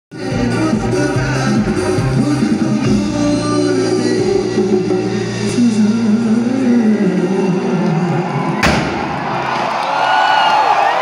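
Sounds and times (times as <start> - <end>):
live band music over loudspeakers: 0.1 - 9.2.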